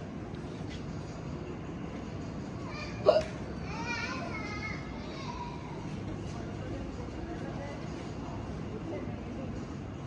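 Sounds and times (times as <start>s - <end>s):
steady background noise: 0.0s - 10.0s
faint children's voices: 2.5s - 10.0s.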